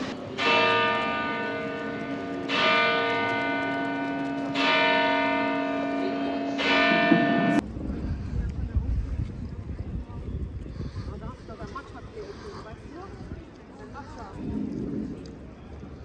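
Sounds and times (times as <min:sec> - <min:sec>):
church bell striking: 0:00.1 - 0:07.6.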